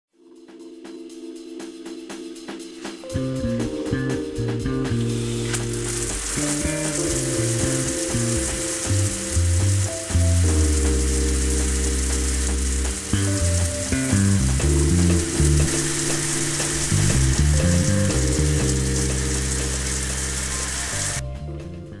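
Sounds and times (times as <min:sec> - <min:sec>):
background music with bass: 0:00.2 - 0:22.0
shower water spraying: 0:04.8 - 0:21.2.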